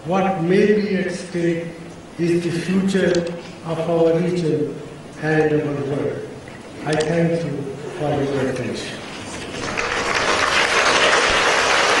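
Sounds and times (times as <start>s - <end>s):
audience applauding: 9.5s - 12.0s.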